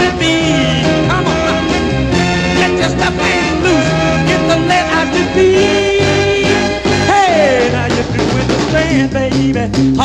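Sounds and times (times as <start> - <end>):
upbeat soul record playing: 0.0 - 10.0.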